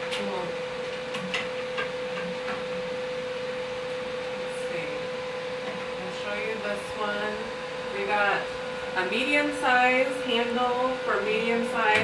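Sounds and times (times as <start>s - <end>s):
machine humming steadily: 0.0s - 12.0s.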